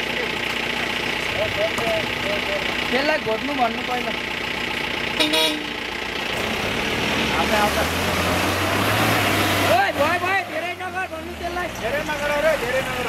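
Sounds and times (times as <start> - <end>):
engine revving hard: 6.2 - 13.0.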